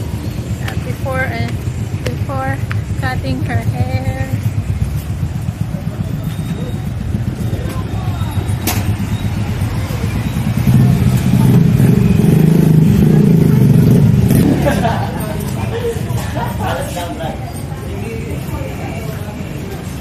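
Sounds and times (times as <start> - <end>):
vehicle engine rumbling: 0.0 - 20.0.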